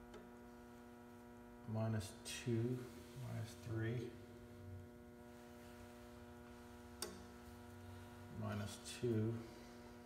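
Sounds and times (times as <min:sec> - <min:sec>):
electrical hum: 0:00.0 - 0:10.0.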